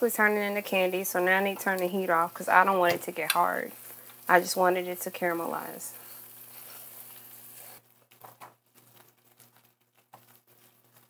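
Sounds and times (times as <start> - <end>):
caramel sizzling in saucepan: 0.0 - 11.0.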